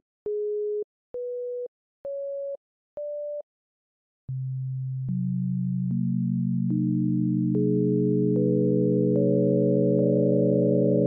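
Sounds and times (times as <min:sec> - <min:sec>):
stacked synthesized sine tones: 0:06.7 - 0:11.0.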